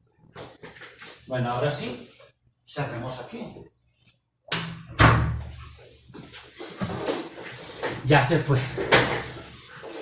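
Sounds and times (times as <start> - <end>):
soft shuffling: 5.5 - 8.5.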